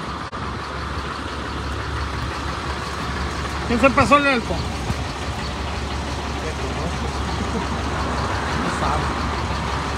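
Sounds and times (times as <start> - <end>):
truck engine idling: 0.0 - 9.9.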